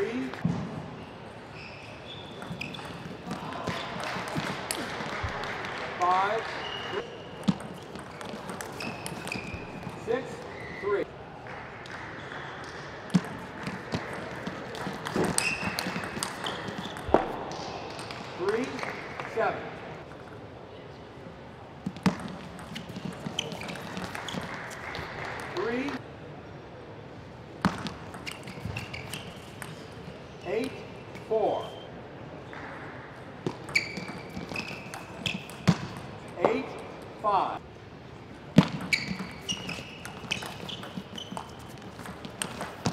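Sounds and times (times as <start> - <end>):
shoes squeaking on floor: 1.5 - 11.0, 12.2 - 17.4, 21.8 - 25.8, 27.8 - 30.8, 33.4 - 36.7, 38.6 - 42.9.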